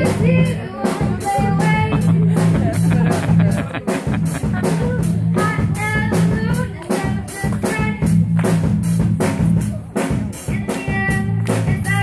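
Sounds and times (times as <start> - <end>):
girl singing into microphone: 0.0 - 2.4, 4.8 - 8.3, 10.4 - 12.0
bass notes: 0.0 - 12.0
drum kit beat: 0.0 - 12.0.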